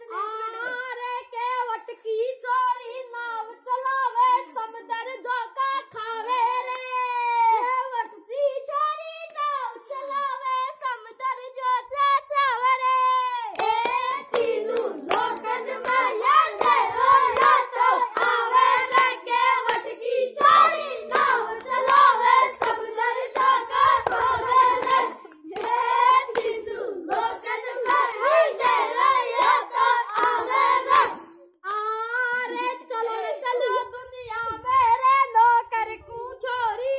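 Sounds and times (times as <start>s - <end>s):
boys singing folk song: 9.5s - 36.9s
rhythmic hand clapping: 13.5s - 32.0s.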